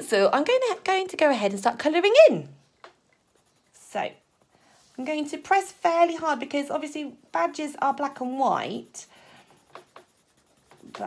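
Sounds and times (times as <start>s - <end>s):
pencil shading on paper: 2.9s - 11.0s.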